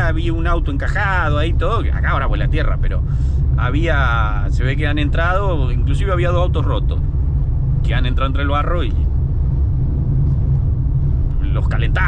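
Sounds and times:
car driving on dirt road: 0.0s - 12.0s.

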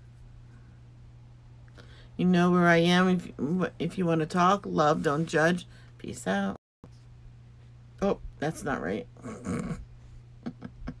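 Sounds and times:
person clearing throat: 9.2s - 9.8s.

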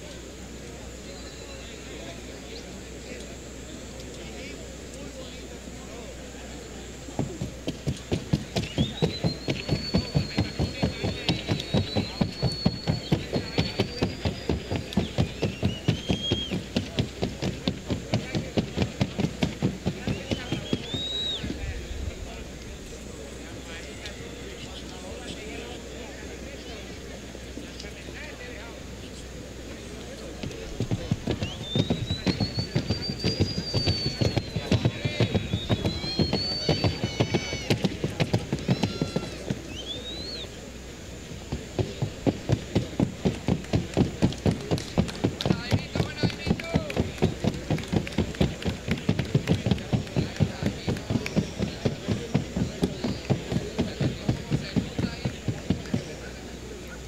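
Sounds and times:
horse hooves trotting: 7.1s - 21.8s, 30.0s - 39.6s, 41.5s - 56.4s.

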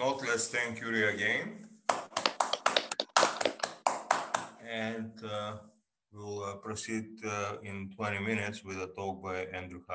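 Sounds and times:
people clapping: 1.9s - 4.6s.

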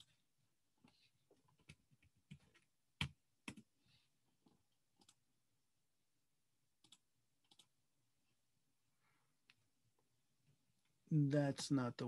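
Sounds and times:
keyboard and mouse clicks: 4.9s - 5.2s, 6.8s - 7.7s.

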